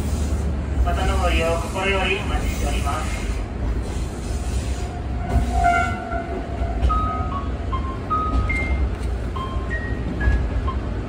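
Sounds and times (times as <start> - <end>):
diesel railcar rumble: 0.0 - 11.0.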